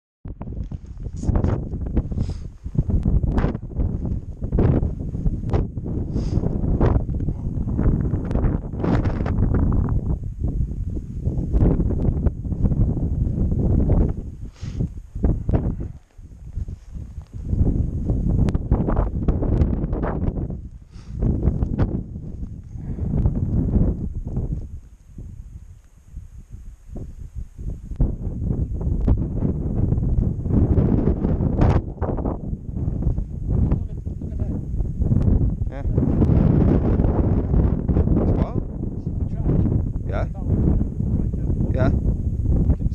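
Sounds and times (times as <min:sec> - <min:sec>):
wind buffeting microphone: 0:00.2 - 0:42.9.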